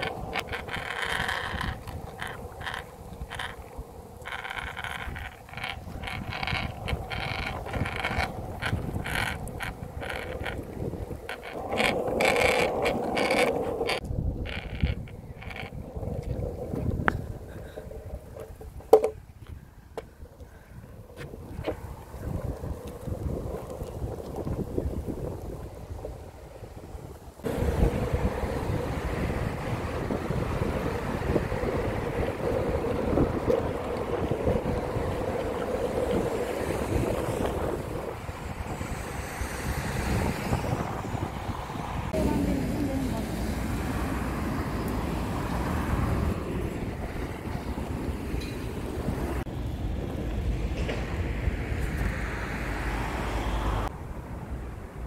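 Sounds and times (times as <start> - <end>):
skateboard wheels rolling on pavement: 0.0 - 55.0
wind buffeting microphone: 0.0 - 55.0.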